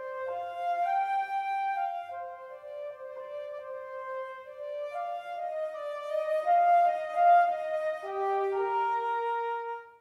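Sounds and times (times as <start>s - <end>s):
solo flute melody: 0.0s - 10.0s.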